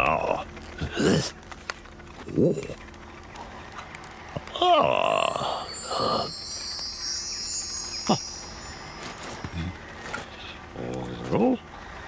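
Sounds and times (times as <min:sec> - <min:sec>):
shimmering cartoon chime effect: 0:05.2 - 0:10.1.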